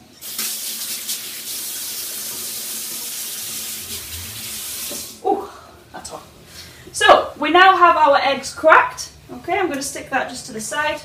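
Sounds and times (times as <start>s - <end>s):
tap water running into sink: 0.2s - 5.2s.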